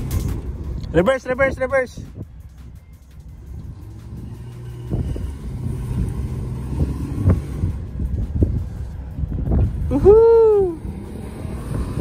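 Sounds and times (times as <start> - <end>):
car engine driving on sand: 0.0 - 12.0.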